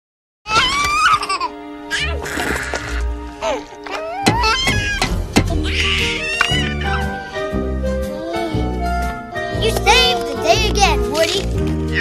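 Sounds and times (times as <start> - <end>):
cartoon girl's high-pitched laugh: 0.5 - 2.4
music: 0.5 - 12.0.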